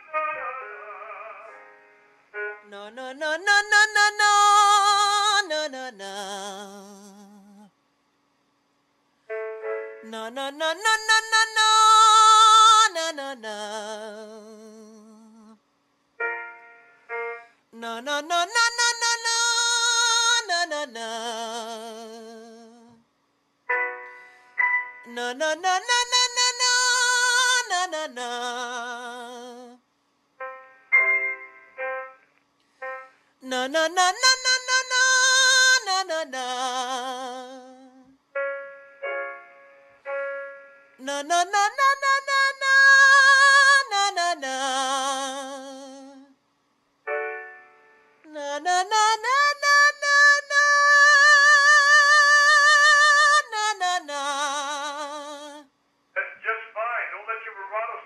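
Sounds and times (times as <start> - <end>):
piano chords: 0.0 - 4.5, 9.3 - 12.6, 16.2 - 17.6, 23.7 - 27.6, 30.4 - 35.8, 38.4 - 43.8, 47.1 - 48.2.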